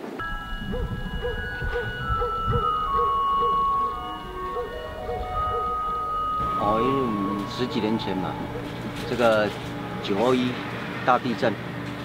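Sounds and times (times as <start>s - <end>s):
slow melody of held notes: 0.0s - 10.9s.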